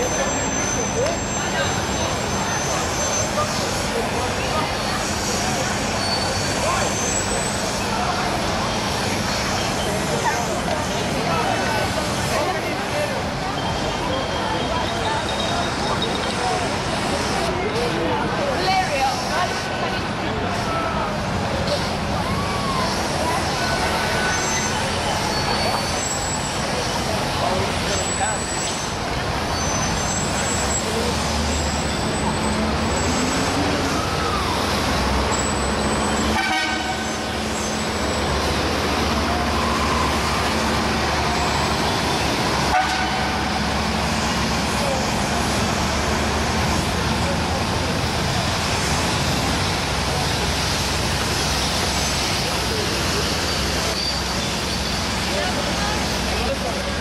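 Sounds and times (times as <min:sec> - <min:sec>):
crowd voices: 0:00.0 - 0:57.0
traffic engines: 0:00.0 - 0:57.0.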